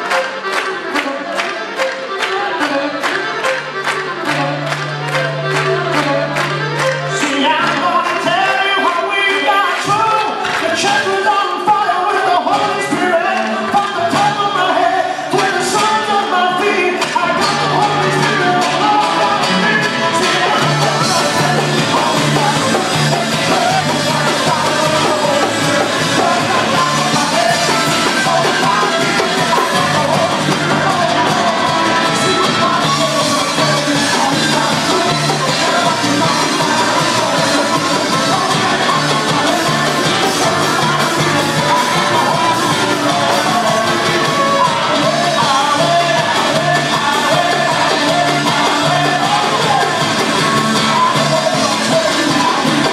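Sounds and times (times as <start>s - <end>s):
acoustic guitar: 2.6s - 52.9s
men singing together: 7.1s - 52.9s.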